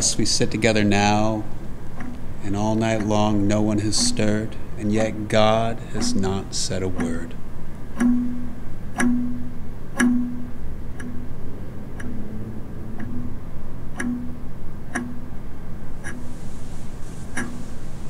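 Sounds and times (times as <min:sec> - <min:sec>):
mantel clock ticking: 0:00.0 - 0:17.8
short low clock note: 0:08.0 - 0:15.2.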